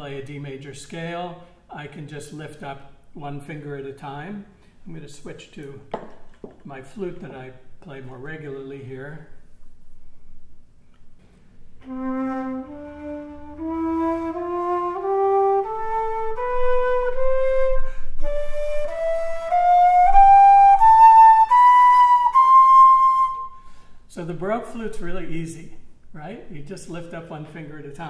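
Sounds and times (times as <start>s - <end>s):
flute playing a scale: 11.8s - 23.8s.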